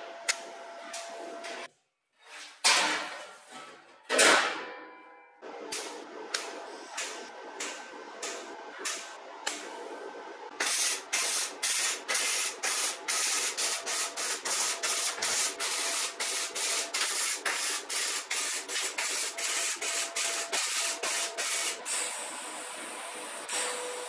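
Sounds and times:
welding arc crackling and hissing: 10.5 - 23.4.

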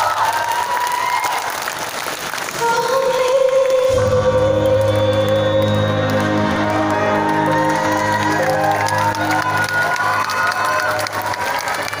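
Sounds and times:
audience cheering and applauding: 0.0 - 12.0.

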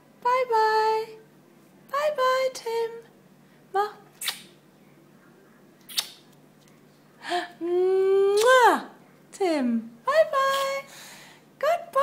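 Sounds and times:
sharp click: 5.9 - 6.2.

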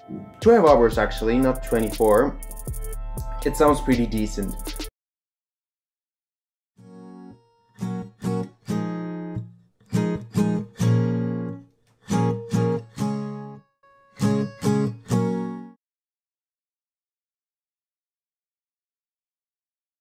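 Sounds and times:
acoustic guitar strumming: 0.1 - 4.7, 6.8 - 15.8.

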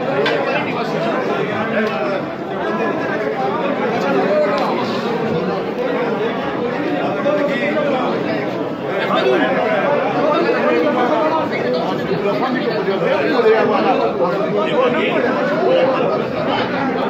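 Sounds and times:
men chattering: 0.0 - 17.0.

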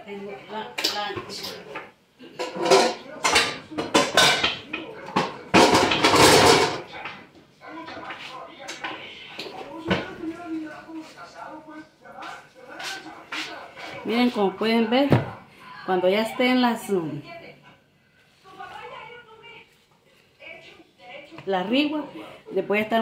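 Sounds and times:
dishes and pans clattering: 0.8 - 10.3.

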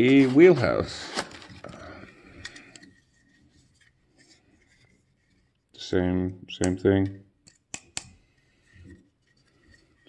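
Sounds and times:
soft rustle: 2.8 - 5.7, 8.3 - 10.0.

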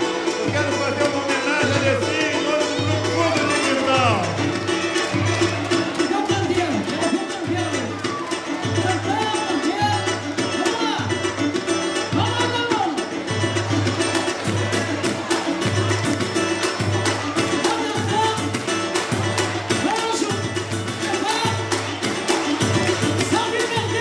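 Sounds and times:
hand drums and percussion: 0.0 - 24.0
samba band playing: 0.0 - 24.0.

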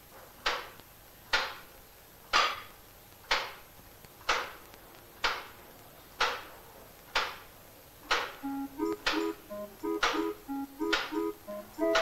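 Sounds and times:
short synthesizer notes melody: 8.4 - 12.0.

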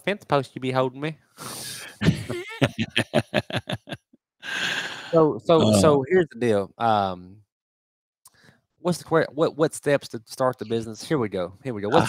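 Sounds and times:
breath: 1.4 - 2.0, 4.4 - 5.2, 8.3 - 8.7
man laughing: 1.8 - 4.0, 5.6 - 6.0.

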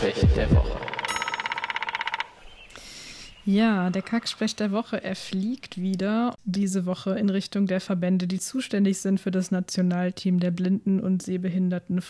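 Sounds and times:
rapid ringing rattle: 0.8 - 2.4
jingle: 1.0 - 1.7.

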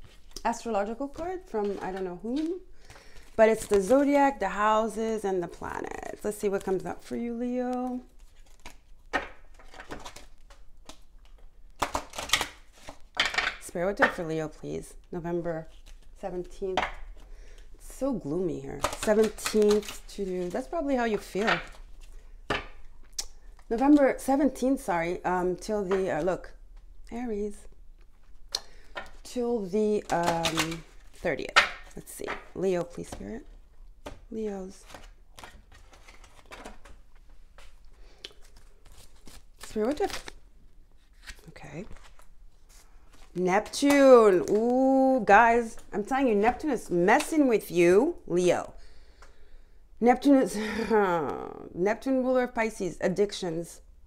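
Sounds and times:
cards being shuffled: 0.0 - 4.2, 6.4 - 14.2, 15.6 - 17.6, 18.8 - 24.8, 28.0 - 40.4, 41.0 - 44.9.

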